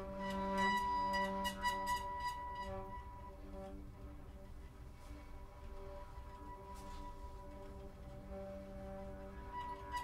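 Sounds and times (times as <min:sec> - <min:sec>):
bowed double bass drone: 0:00.0 - 0:10.0.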